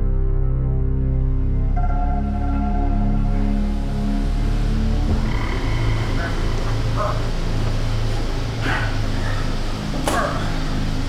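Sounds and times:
background music: 0.0s - 11.0s
steady low hum: 1.6s - 11.0s.

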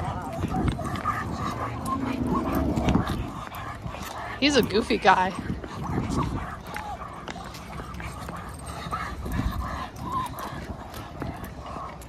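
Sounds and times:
dogs whining and yipping: 0.0s - 12.0s
steady low rumble: 0.0s - 12.0s.

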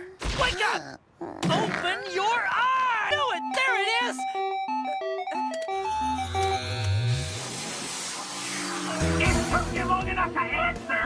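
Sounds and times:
phone ringtone beeping notes: 3.2s - 7.4s
rising whoosh: 7.0s - 9.9s.

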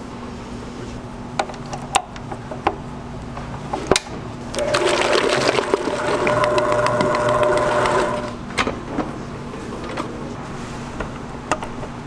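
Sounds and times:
stand mixer motor whine: 4.6s - 8.4s.

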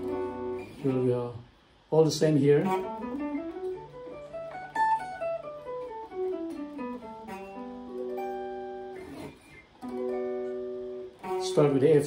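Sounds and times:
guitar plucked notes: 0.0s - 1.3s, 2.2s - 12.0s.

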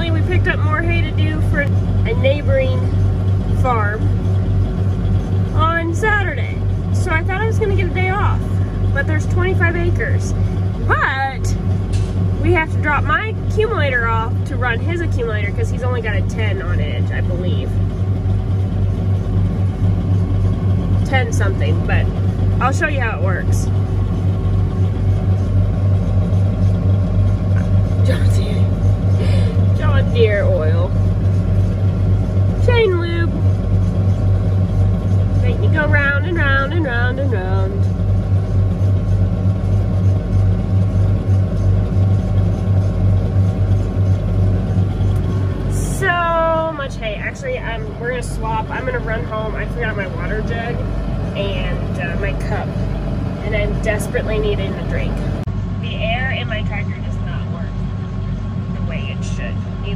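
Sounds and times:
tractor engine droning: 0.0s - 59.9s.

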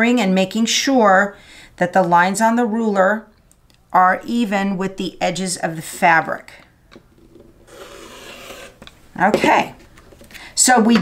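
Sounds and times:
rotary cutter slicing fabric: 7.7s - 8.8s.

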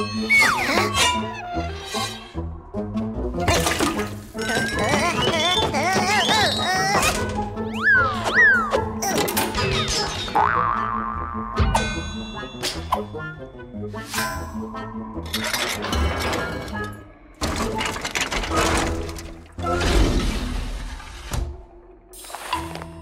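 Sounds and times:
playful cartoon music: 0.0s - 20.8s
springy boing: 10.4s - 11.8s.

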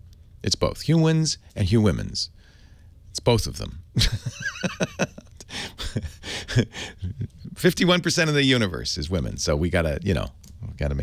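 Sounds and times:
breathy laughter: 4.0s - 7.5s.

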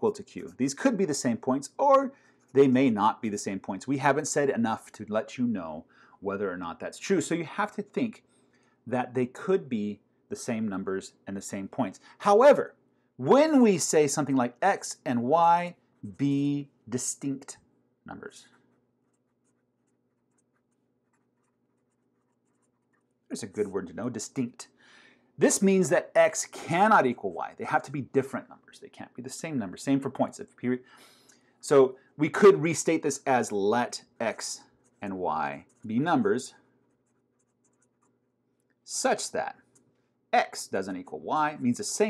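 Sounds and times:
marker scratching on paper: 18.4s - 23.3s, 34.7s - 38.4s.

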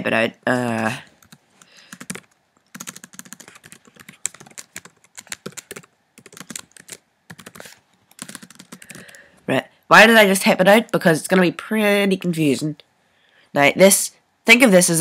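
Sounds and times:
keyboard typing: 1.2s - 9.2s.

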